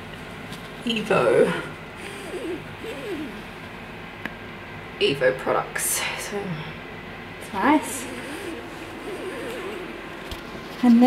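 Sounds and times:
low room hum: 0:00.0 - 0:11.0
woman murmuring: 0:07.5 - 0:09.9.

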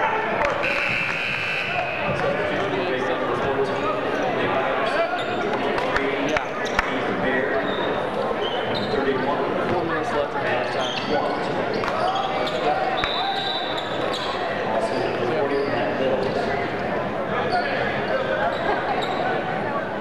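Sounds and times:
crowd and player voices: 0:00.0 - 0:20.0
sneakers squeaking: 0:00.5 - 0:02.7, 0:07.6 - 0:09.0, 0:10.8 - 0:14.6, 0:17.5 - 0:19.5.

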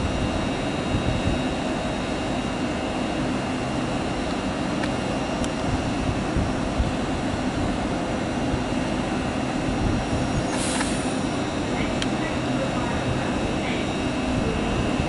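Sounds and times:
train equipment humming: 0:00.0 - 0:15.0
short hiss of air: 0:10.5 - 0:11.2.

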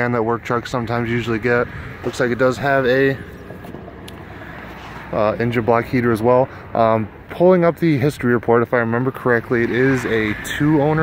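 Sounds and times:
outdoor background noise: 0:00.0 - 0:11.0.

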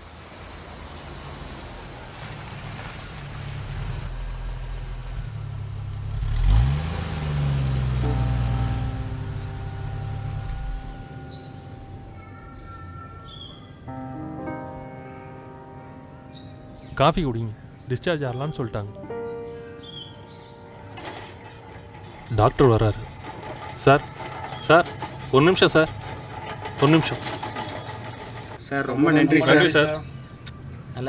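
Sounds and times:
car engine passing by: 0:00.0 - 0:12.1
held tones: 0:08.0 - 0:13.4.

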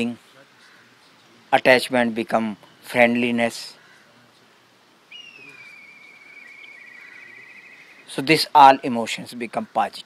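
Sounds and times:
distant bird whistled call: 0:05.1 - 0:08.2.

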